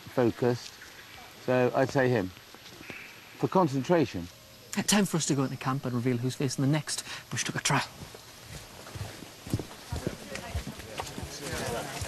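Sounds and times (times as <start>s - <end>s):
footsteps on forest path: 0.0s - 3.5s, 4.2s - 12.0s.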